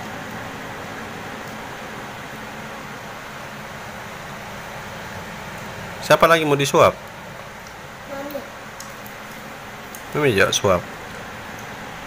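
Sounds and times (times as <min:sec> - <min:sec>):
electric fan hissing: 0:00.0 - 0:12.0.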